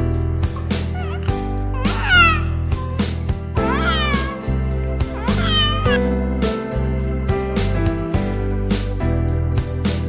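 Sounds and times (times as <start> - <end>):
infant crying: 0.9 - 6.1.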